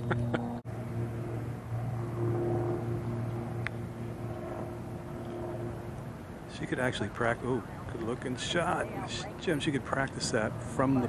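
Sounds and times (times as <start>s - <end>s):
low engine hum: 0.0s - 11.0s
outdoor ambience: 0.0s - 11.0s.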